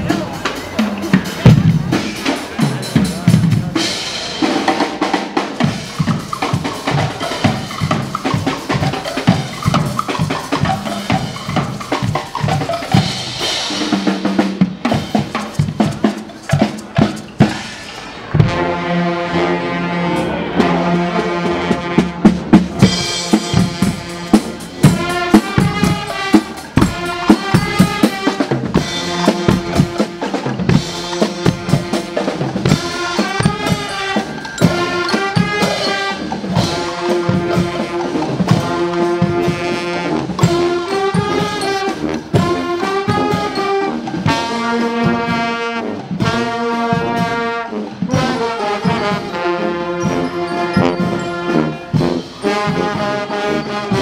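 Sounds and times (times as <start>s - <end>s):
bass and snare drums beating: 0.0s - 18.8s, 21.4s - 54.0s
brass and saxophones playing tune: 0.0s - 54.0s.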